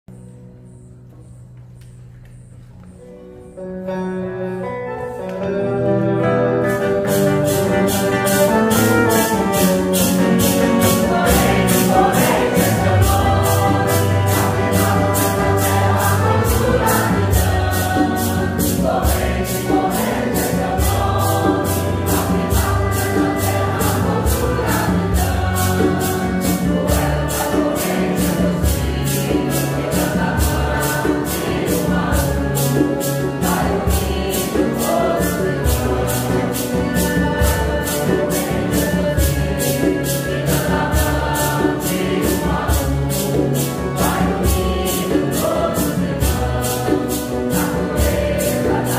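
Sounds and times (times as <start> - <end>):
instrumental bass: 3.9 - 48.9
congregation singing a hymn: 4.6 - 48.9
shaker beat: 6.7 - 48.9.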